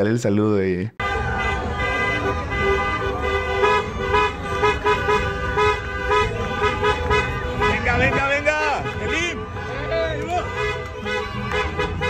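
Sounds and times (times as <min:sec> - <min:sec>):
street crowd din: 0:00.0 - 0:12.0
car horns tooting: 0:01.0 - 0:12.0.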